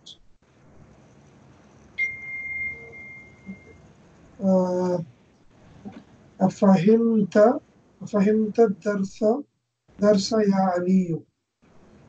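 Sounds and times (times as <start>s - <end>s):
high-pitched chime ringing: 2.0s - 3.8s.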